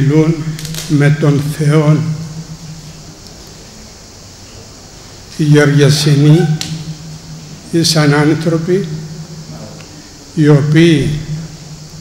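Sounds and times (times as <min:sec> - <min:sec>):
man's voice: 0:00.0 - 0:02.2, 0:05.4 - 0:06.6, 0:10.4 - 0:11.5
microphone hiss: 0:00.0 - 0:12.0.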